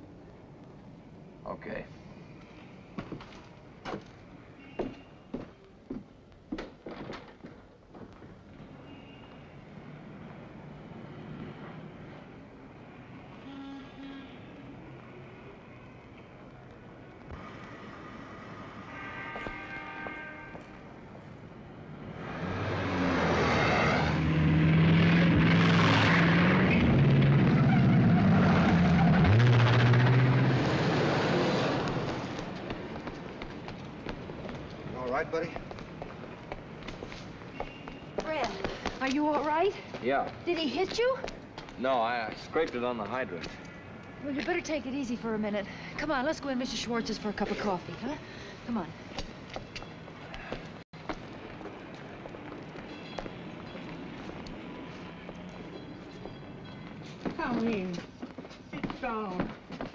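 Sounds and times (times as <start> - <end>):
car speeding past: 22.0 - 32.6.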